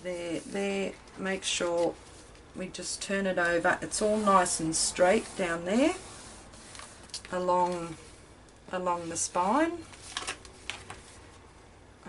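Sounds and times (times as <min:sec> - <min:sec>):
paper envelopes rustling: 0:09.8 - 0:11.2.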